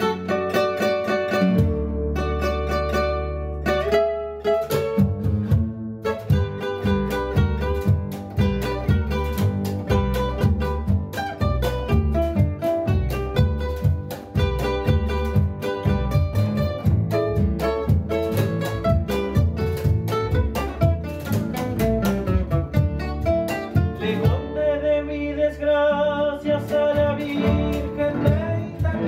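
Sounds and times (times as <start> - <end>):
classical guitars: 0.0 - 29.0
upright double bass: 0.0 - 29.0
box drum with brush and stick: 4.5 - 24.6, 26.6 - 29.0.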